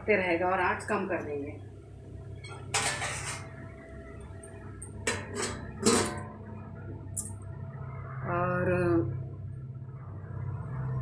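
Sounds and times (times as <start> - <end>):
steady low hum: 0.0 - 11.0
steel utensils clattering: 2.4 - 3.5, 5.1 - 6.3.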